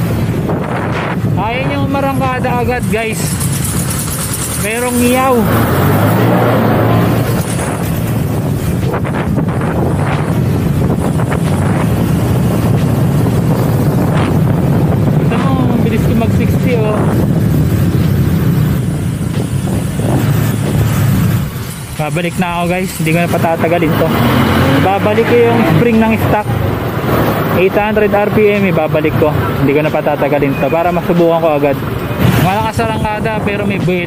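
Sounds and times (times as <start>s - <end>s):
wind on microphone: 0.0s - 28.6s
engine whine: 0.0s - 34.0s
scooter engine running: 2.8s - 15.7s.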